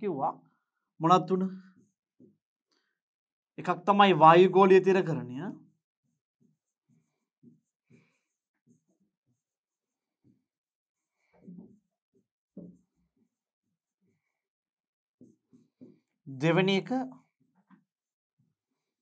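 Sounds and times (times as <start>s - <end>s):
stylus scratching on tablet: 1.2s - 2.4s, 3.6s - 14.5s, 15.2s - 19.0s.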